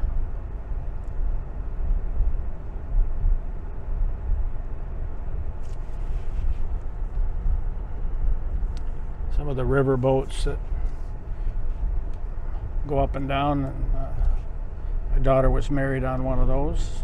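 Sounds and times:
vehicle engine and tyres rumbling: 0.0 - 17.0.

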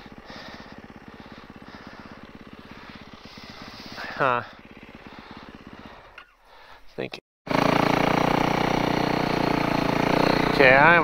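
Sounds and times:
dirt bike engine idling: 0.0 - 11.0.

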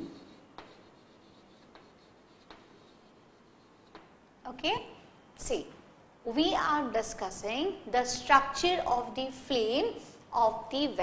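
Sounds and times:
chalk scratching on blackboard: 0.0 - 4.2
chalk taps: 0.0 - 4.2.

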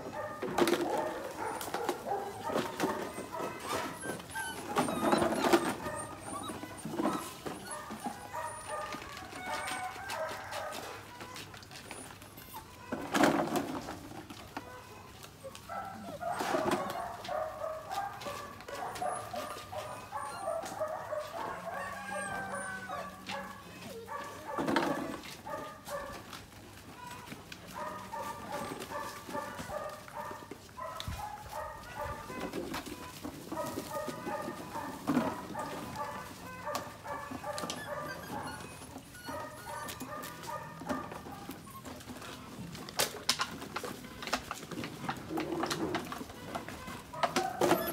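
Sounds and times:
puppies yapping and barking: 0.0 - 47.9.

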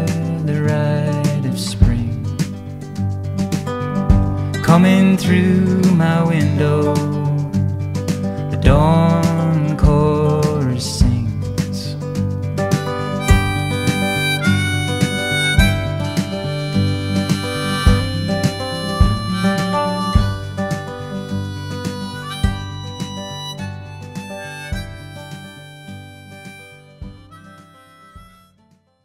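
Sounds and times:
acoustic guitar: 0.0 - 29.0
steady beat: 1.3 - 4.7, 8.1 - 10.2, 11.0 - 28.6
harmonica melody: 12.6 - 28.6.

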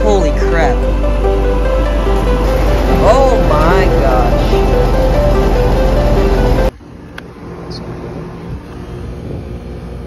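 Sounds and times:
intro music: 0.0 - 6.8
air conditioner unit humming: 0.0 - 10.0.

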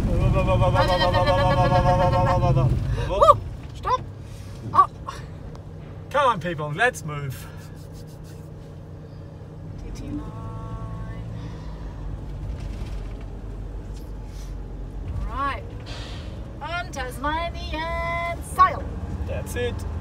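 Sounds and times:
voices: 0.0 - 4.1, 9.8 - 11.4, 16.6 - 20.0
vehicle engine rumble: 0.0 - 20.0.

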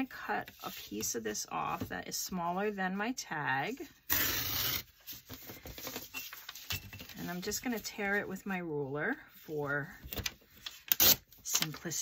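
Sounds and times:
paper rustling: 5.0 - 7.8.

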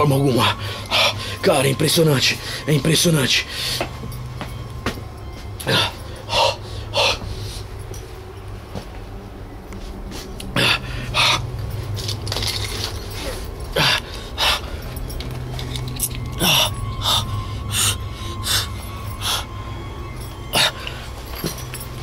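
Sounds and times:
low steady hum: 0.0 - 22.0
man breathing hard: 0.4 - 1.4, 3.4 - 4.0, 5.6 - 7.9, 10.1 - 11.8, 13.1 - 15.2, 16.2 - 19.7.

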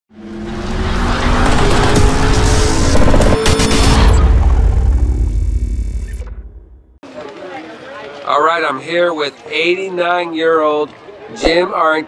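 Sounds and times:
dense noisy sound effect: 0.8 - 7.0
intro music: 1.2 - 7.0
sharp hit: 1.2 - 7.0.

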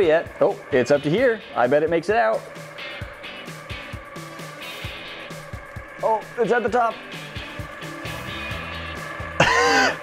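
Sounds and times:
background music: 0.0 - 10.0
person crying out excitedly: 9.4 - 10.0.

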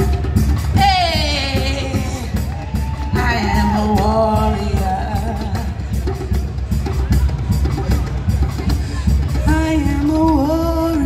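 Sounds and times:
hand drum and drum kit beat: 0.0 - 11.0.

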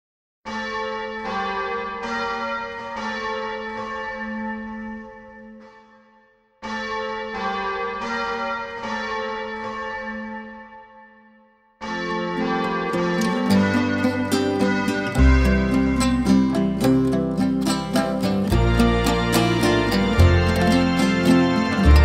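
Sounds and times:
bells ringing: 11.8 - 22.0.

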